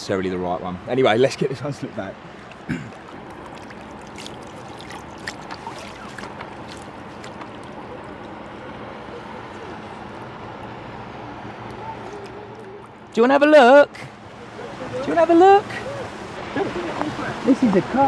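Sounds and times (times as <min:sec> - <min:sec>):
faint distant voices: 0:07.6 - 0:13.1, 0:14.0 - 0:18.0.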